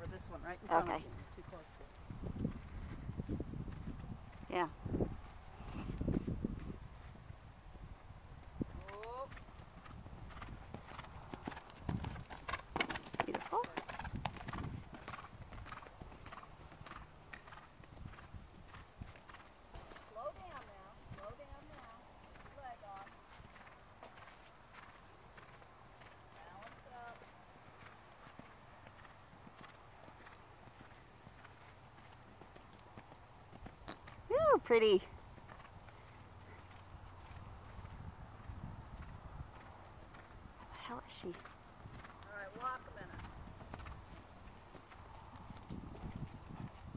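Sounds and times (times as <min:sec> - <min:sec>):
horse hoofbeats on sand: 0:08.7 - 0:46.9.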